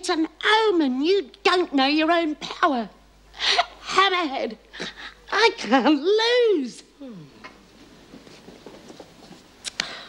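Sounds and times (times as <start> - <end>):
faint rustling: 7.4 - 9.6.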